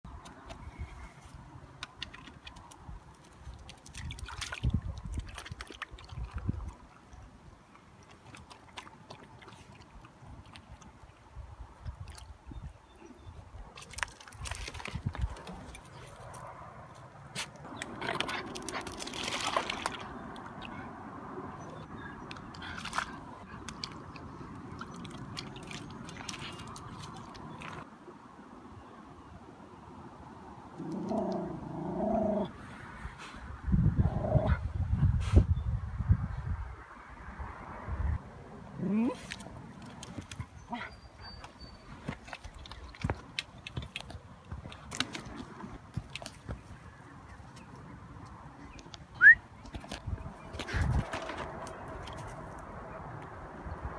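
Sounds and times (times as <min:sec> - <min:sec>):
splashing in water: 0:01.3 - 0:12.6, 0:13.5 - 0:16.7, 0:17.3 - 0:27.9, 0:38.8 - 0:53.4
dog lapping water: 0:03.6 - 0:11.0, 0:22.5 - 0:27.8.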